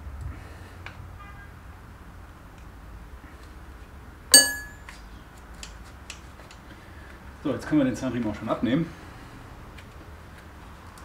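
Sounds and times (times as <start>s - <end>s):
metal tool striking metal: 4.4s - 4.8s.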